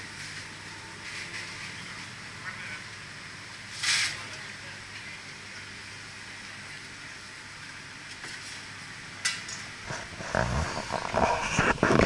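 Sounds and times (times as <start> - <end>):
camera rustling and knocking: 10.0 - 12.0.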